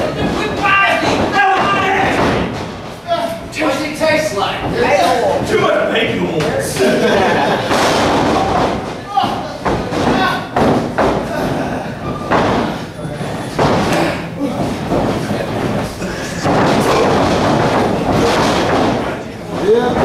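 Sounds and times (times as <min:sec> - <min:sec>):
voices shouting: 0:00.0 - 0:02.5
bodies thudding on wrestling mat: 0:16.4 - 0:19.1.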